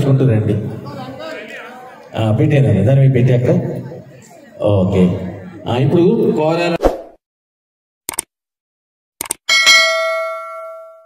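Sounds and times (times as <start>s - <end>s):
notification bell ding: 9.5s - 11.0s.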